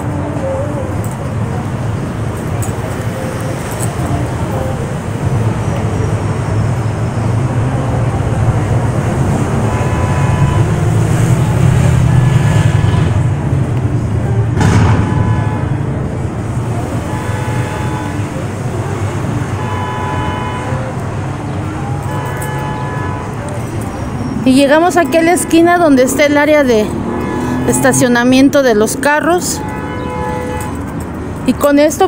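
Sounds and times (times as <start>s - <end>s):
low rumble of traffic: 0.0s - 32.0s.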